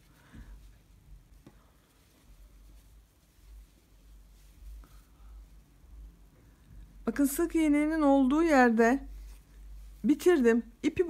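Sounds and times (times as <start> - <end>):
hands rustling yarn hat: 0.0 - 11.0.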